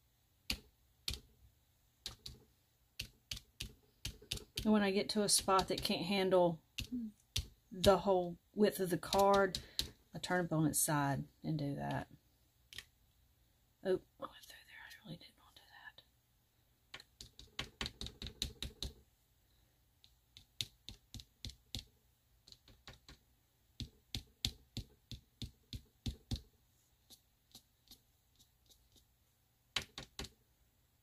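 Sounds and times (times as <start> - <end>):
card tapping on photo paper: 3.0 - 4.6, 5.3 - 6.2, 29.7 - 30.4.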